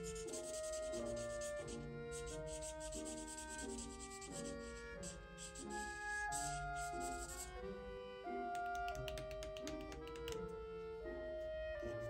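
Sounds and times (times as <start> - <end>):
marker scrubbing on paper: 0.0 - 7.6
soft background music: 0.0 - 12.0.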